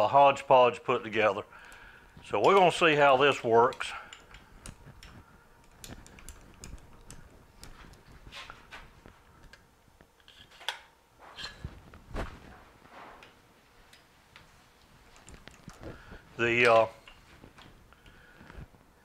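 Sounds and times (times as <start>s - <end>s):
metal tools clicking and knocking: 1.6s - 8.1s.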